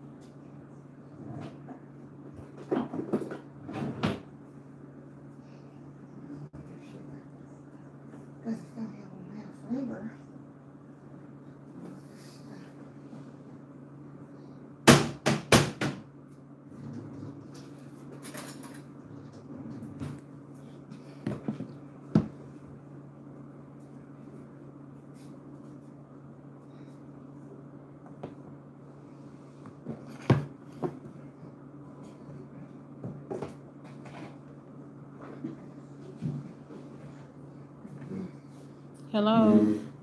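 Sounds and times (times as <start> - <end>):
steady low hum: 0.0 - 40.0
sharp knocks of kitchen items: 14.8 - 16.0.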